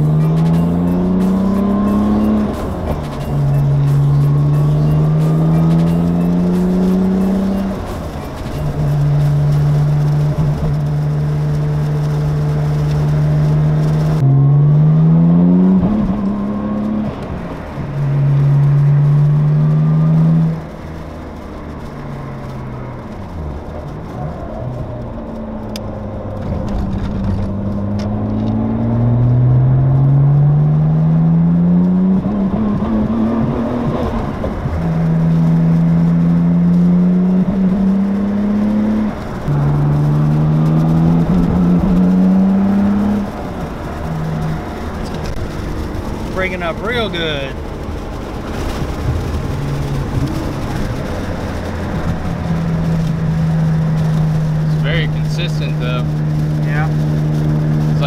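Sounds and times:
car engine accelerating through gears: 0.0s - 58.0s.

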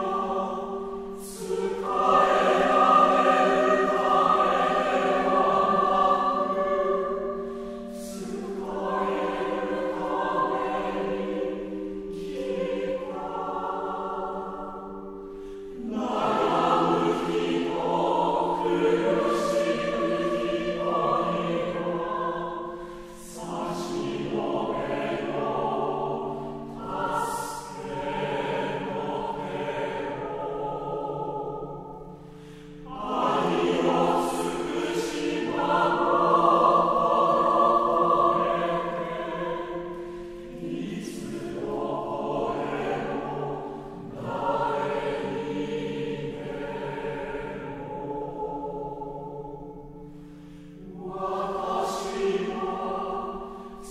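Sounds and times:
choir singing sacred music: 0.0s - 53.9s.

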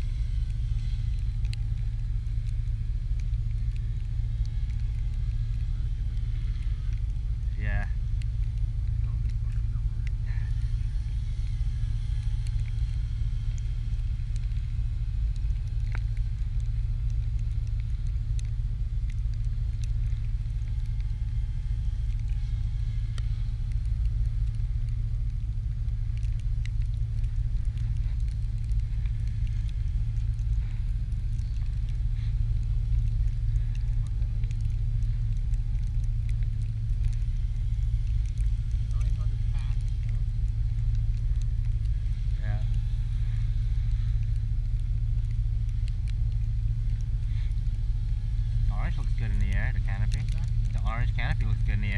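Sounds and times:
wind rumble on microphone: 0.0s - 51.9s.

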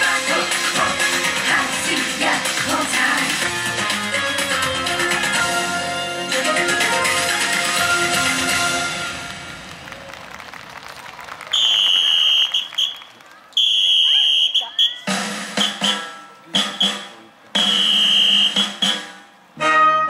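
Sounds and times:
band music over loudspeakers: 0.0s - 10.2s, 14.6s - 20.0s
high whistle-like tone: 11.6s - 13.0s, 13.6s - 15.8s, 16.7s - 18.7s.

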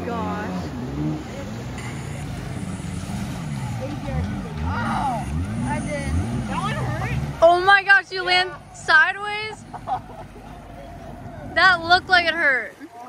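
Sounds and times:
jet ski engine revving: 0.0s - 12.8s.

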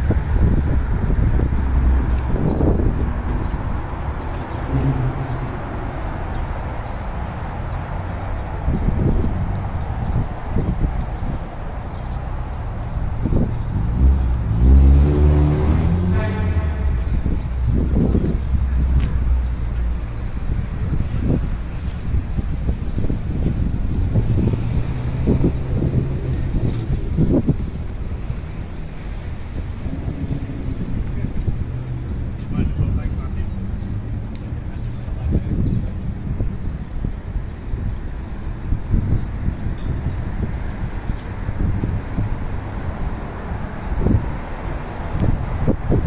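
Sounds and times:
motorcycle engine revving: 13.9s - 17.3s.

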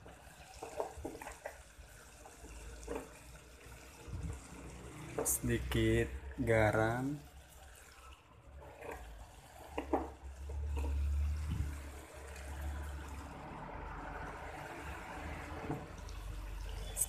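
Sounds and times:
food sizzling in a pan: 0.0s - 17.0s.

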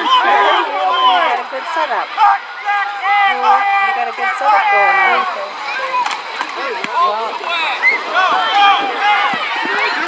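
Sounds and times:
crowd yelling: 0.0s - 10.0s.

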